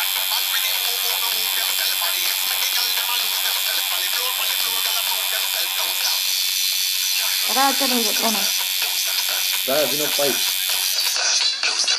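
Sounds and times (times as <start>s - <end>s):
tattoo machine buzzing: 0.0s - 11.9s.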